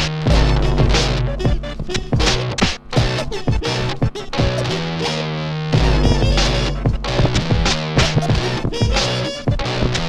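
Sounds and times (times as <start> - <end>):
band backing music: 0.0 - 10.0
turntable scratching: 0.0 - 10.0.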